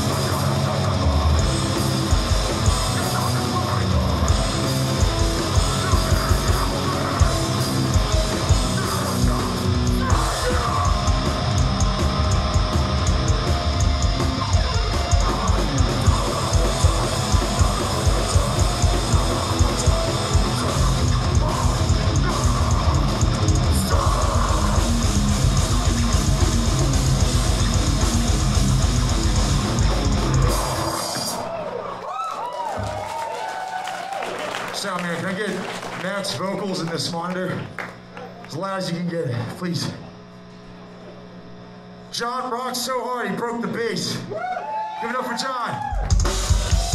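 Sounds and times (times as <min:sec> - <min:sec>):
punk band playing live: 0:00.0 - 0:31.6, 0:45.9 - 0:46.9
electrical mains hum: 0:00.1 - 0:46.9.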